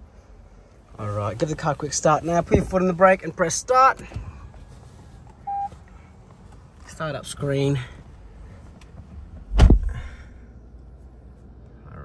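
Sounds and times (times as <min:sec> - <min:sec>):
dashboard chime beep: 0:05.4 - 0:05.7.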